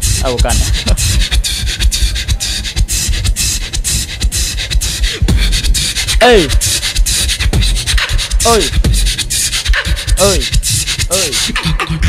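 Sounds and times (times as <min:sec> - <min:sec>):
beatboxing into microphone: 0:00.0 - 0:12.0.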